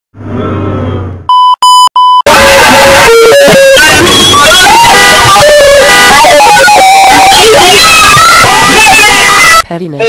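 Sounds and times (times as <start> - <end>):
short electronic beeps: 1.3 - 2.3.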